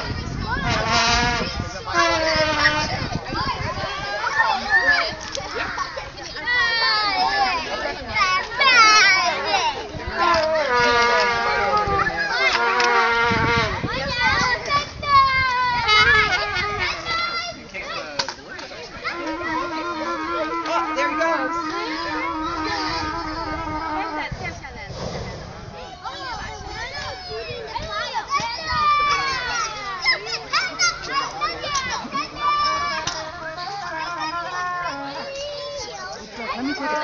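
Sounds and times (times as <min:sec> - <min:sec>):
children shouting: 0:00.0 - 0:18.2, 0:18.9 - 0:24.3, 0:25.8 - 0:37.0.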